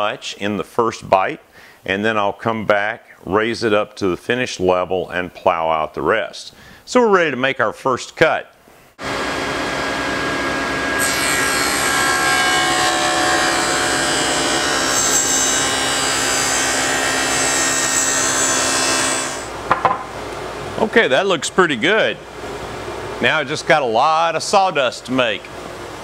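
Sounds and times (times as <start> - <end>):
table saw cutting wood: 9.0 - 19.6.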